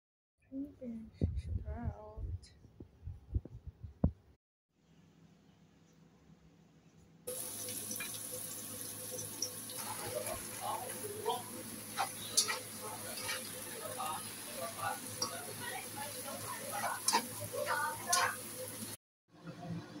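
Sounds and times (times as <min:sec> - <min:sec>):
leaves sizzling in hot oil: 0:07.3 - 0:19.0
utensil clicking against pan: 0:12.0 - 0:13.4, 0:18.1 - 0:18.4.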